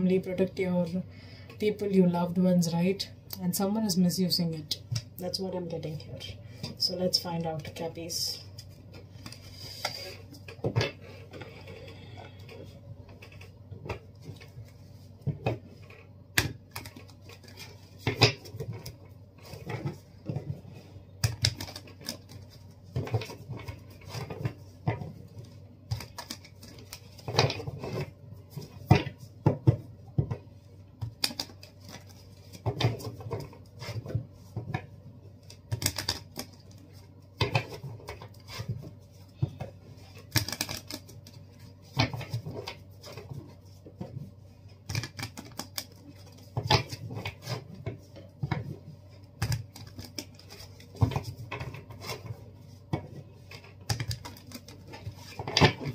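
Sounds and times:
cards being shuffled: 0:21.3 - 0:24.6, 0:25.9 - 0:28.1, 0:31.0 - 0:34.1, 0:40.2 - 0:43.4, 0:44.9 - 0:47.7, 0:49.4 - 0:52.8, 0:53.4 - 0:55.9.

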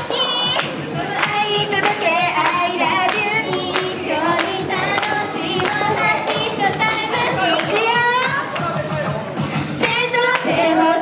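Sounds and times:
girls singing in unison: 0:00.0 - 0:08.5, 0:09.8 - 0:11.0
pop backing track with beat: 0:00.0 - 0:11.0
hand claps: 0:00.5 - 0:09.0, 0:09.8 - 0:10.5.

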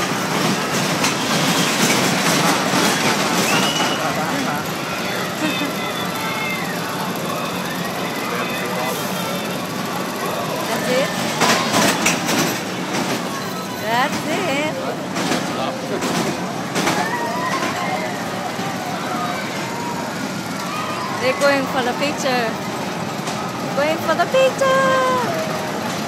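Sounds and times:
many voices and shrieks: 0:00.0 - 0:26.0
roller coaster rattling on track: 0:00.0 - 0:26.0.

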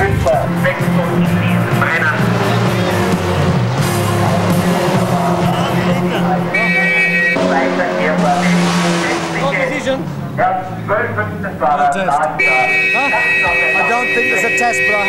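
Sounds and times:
background music: 0:00.0 - 0:15.0
men's voices talking: 0:00.0 - 0:15.0.

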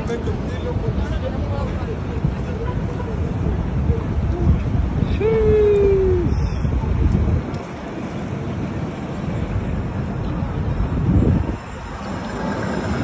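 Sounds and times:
street traffic: 0:00.0 - 0:13.0
wind on microphone: 0:00.0 - 0:13.0.

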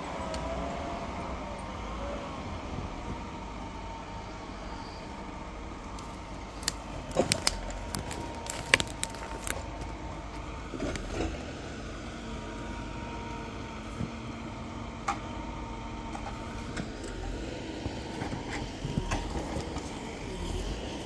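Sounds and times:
faint steady whine: 0:00.0 - 0:21.0
forestry vehicle running: 0:00.0 - 0:21.0.

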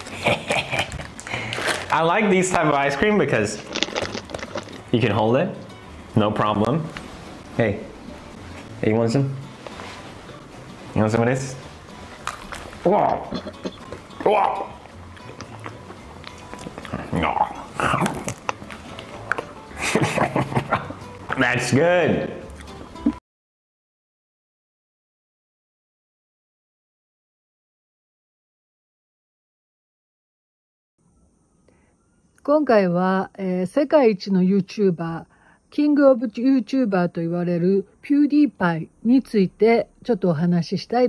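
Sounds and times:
man laughing: 0:00.0 - 0:01.3, 0:19.7 - 0:21.1
man chuckling: 0:00.0 - 0:01.5, 0:13.2 - 0:14.8, 0:19.7 - 0:21.1
quiet background music: 0:00.0 - 0:23.2, 0:31.0 - 0:41.0
chewing clicks: 0:03.6 - 0:04.9, 0:15.1 - 0:19.5, 0:22.5 - 0:22.8.

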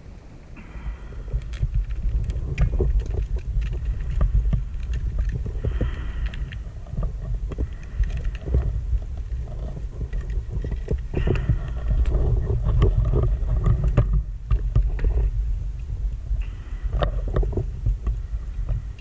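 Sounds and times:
bubbling and crackle: 0:00.0 - 0:19.0
low rumble of water movement: 0:00.0 - 0:19.0.

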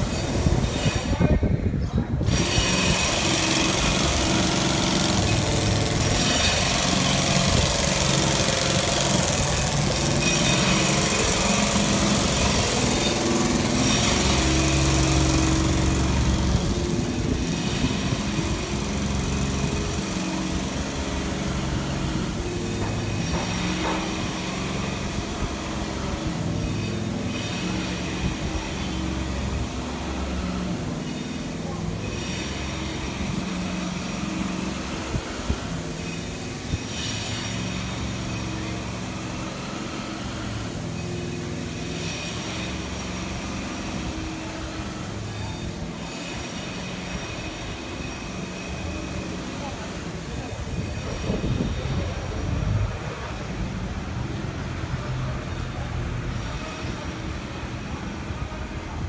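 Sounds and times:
vehicle engines in traffic: 0:00.0 - 0:59.0.

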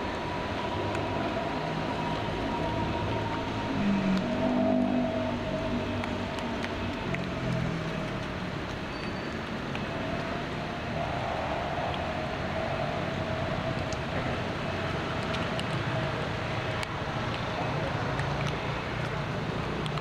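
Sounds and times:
mid-pitched hum: 0:00.0 - 0:07.0
outdoor background rumble: 0:00.0 - 0:20.0
faint clicks: 0:14.8 - 0:20.0.

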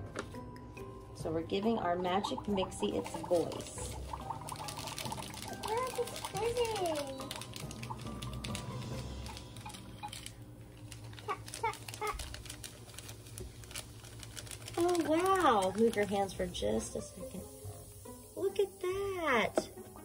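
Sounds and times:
plastic wand stirring water: 0:02.0 - 0:10.3, 0:11.0 - 0:19.8.

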